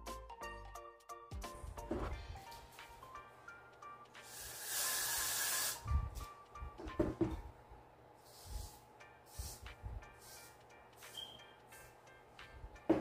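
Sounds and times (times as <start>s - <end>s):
background music: 0.0s - 7.6s, 8.2s - 13.0s
aerosol hair spray hiss: 4.2s - 5.9s, 8.2s - 10.6s.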